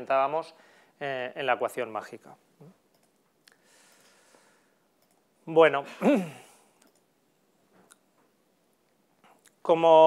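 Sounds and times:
faint clicks: 5.0s - 5.2s, 6.8s - 7.1s
man humming or sighing: 5.9s - 6.6s.

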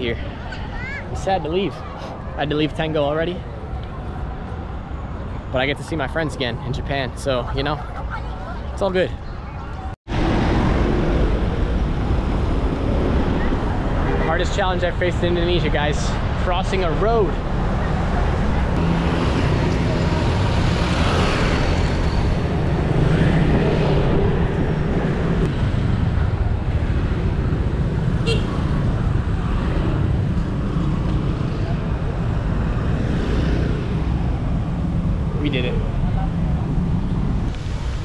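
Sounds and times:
cars and motorcycles passing: 0.0s - 38.0s.

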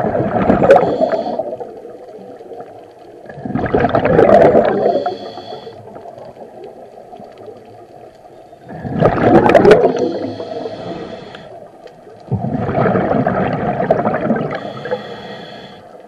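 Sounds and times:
exhaled bubbles underwater: 0.0s - 15.7s
regulator breathing noise: 0.7s - 1.8s, 4.8s - 6.1s, 9.8s - 11.8s, 14.5s - 16.0s.

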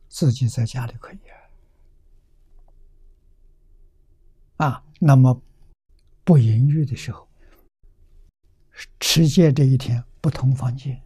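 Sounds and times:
man speaking: 0.1s - 1.4s, 4.6s - 5.4s, 6.2s - 7.3s, 8.8s - 11.0s.

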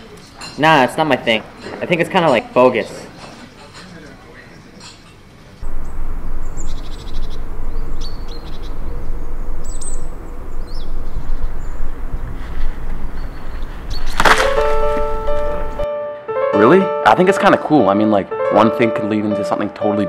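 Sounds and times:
birds chirping: 5.6s - 15.8s
wind rumble on microphone: 5.6s - 15.8s
plucked-string music: 14.1s - 20.0s.

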